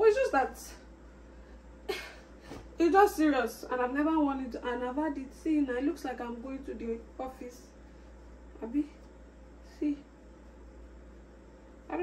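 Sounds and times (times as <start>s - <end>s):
woman's voice: 0.0s - 0.9s, 2.8s - 7.8s, 8.6s - 9.1s, 9.7s - 10.1s
steady low hum: 0.0s - 12.0s.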